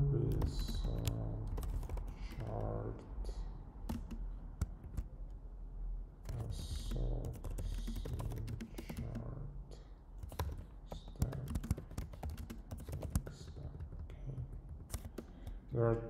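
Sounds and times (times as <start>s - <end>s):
typing on a computer keyboard: 0.2s - 2.8s, 3.8s - 5.1s, 6.2s - 9.3s, 10.2s - 15.6s.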